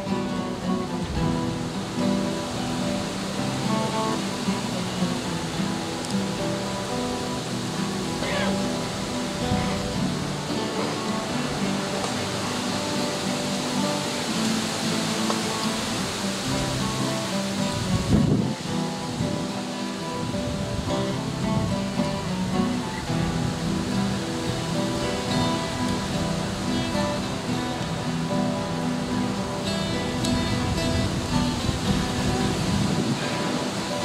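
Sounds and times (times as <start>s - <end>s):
acoustic guitars strumming: 0.0s - 34.0s.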